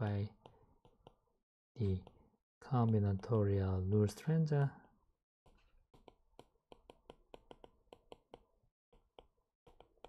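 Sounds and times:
stylus tapping on tablet screen: 0.4s - 1.2s, 5.5s - 10.0s.

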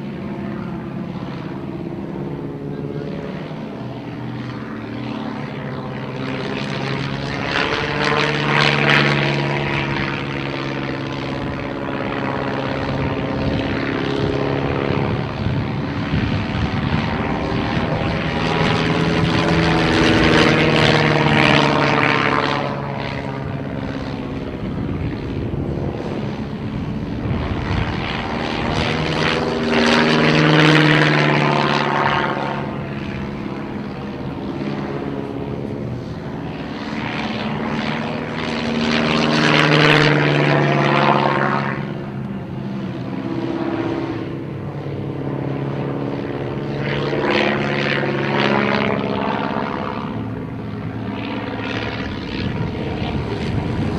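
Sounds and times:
biplane engine and propeller: 0.0s - 53.9s.

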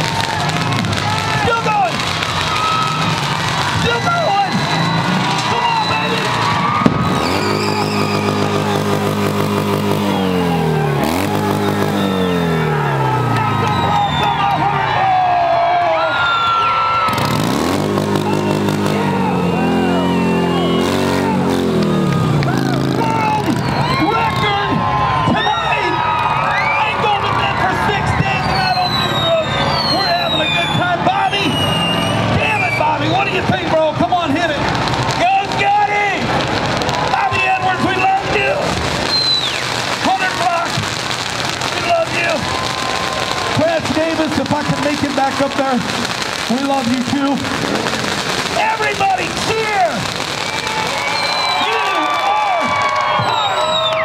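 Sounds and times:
crackling: 0.0s - 10.2s, 34.6s - 54.0s
motorcycle engine revving: 0.0s - 14.4s, 17.1s - 24.5s, 31.1s - 33.4s
crowd cheering and whistling: 0.0s - 54.0s.

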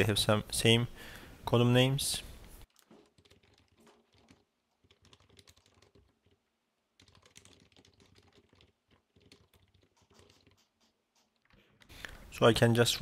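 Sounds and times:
typing on computer keyboard: 2.7s - 6.4s, 7.0s - 11.6s.

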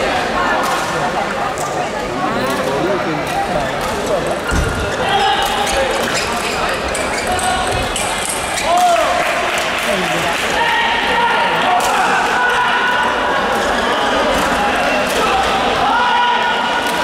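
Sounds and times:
chatter of voices echoing: 0.0s - 17.0s.

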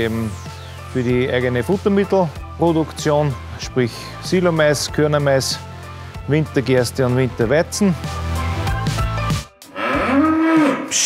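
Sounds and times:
bull mooing: 9.7s - 11.0s.

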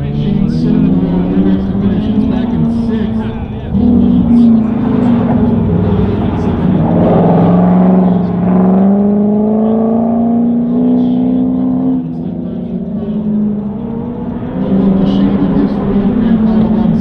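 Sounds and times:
car engine accelerating: 0.0s - 17.0s.

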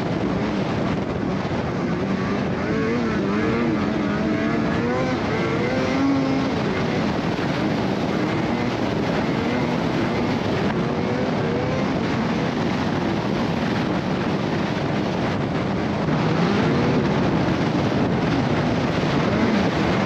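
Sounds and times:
snowmobile engine running: 0.0s - 20.0s
snowmobile track noise: 0.0s - 20.0s.

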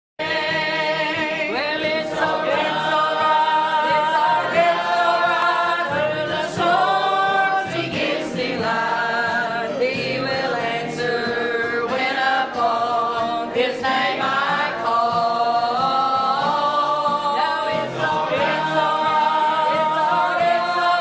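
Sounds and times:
church choir singing: 0.2s - 21.0s.

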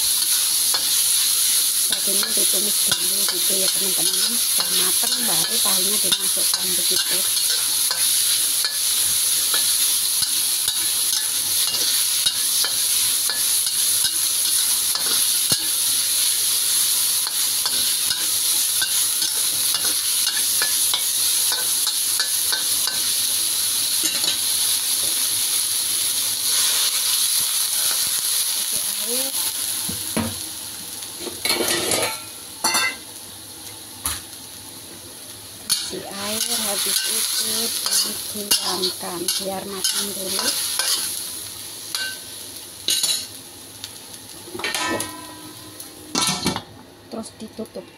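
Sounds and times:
meat sizzling in a wok: 0.0s - 47.3s.

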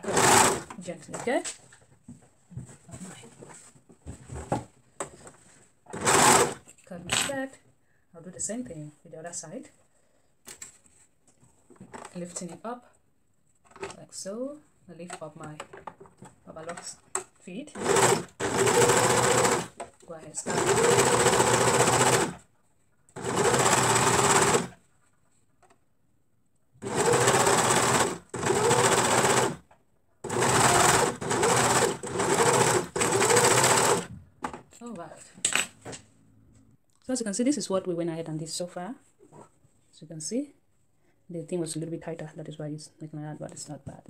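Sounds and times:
overlock sewing machine running: 0.0s - 0.7s, 5.9s - 6.6s, 17.8s - 19.8s, 20.4s - 22.4s, 23.2s - 24.8s, 26.8s - 29.6s, 30.2s - 34.1s.

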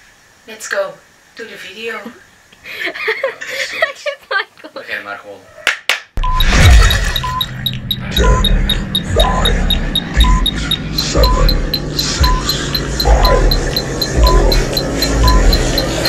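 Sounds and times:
fast high ticking: 6.2s - 16.0s
short beeps with low thump: 6.2s - 16.0s.

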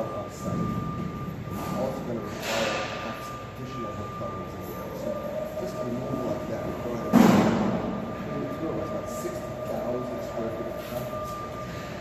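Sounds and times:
steady two-pitch hum: 0.0s - 12.0s
loud echoing bang: 7.1s - 7.9s.

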